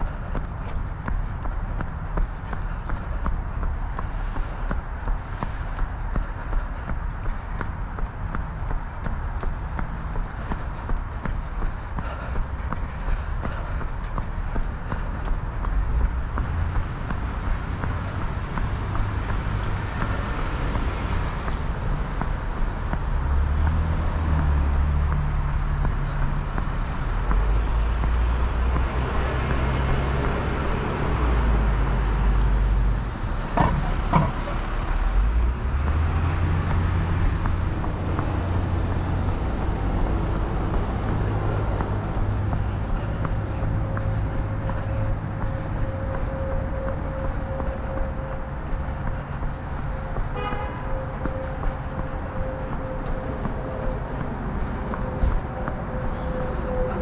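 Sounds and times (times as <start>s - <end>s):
cars passing: 0.0s - 57.0s.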